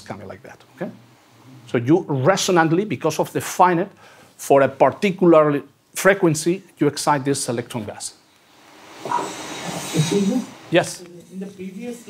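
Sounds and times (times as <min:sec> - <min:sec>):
hiss: 0:08.4 - 0:11.0.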